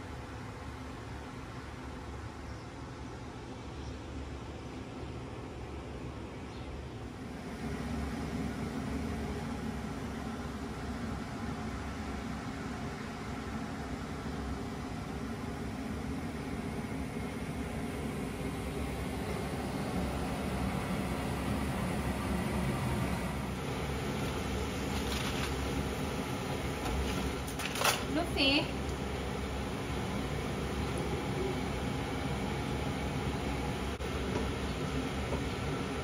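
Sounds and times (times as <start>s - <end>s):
steady whirring hum: 0.0s - 36.0s.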